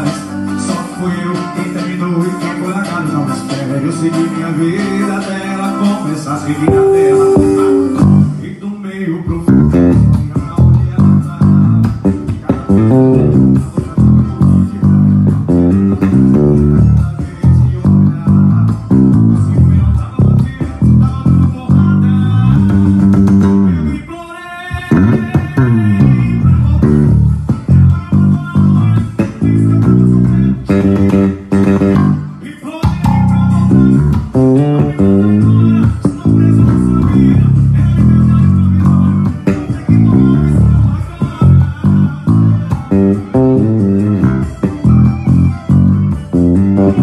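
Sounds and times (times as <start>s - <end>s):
forro band music: 0.6s - 8.6s, 9.4s - 47.0s
electric bass fingerstyle line: 6.6s - 8.5s, 9.3s - 24.0s, 24.9s - 47.0s.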